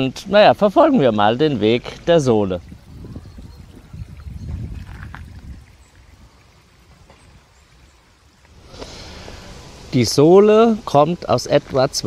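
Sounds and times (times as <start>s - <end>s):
water trickling along a channel: 0.0s - 12.0s.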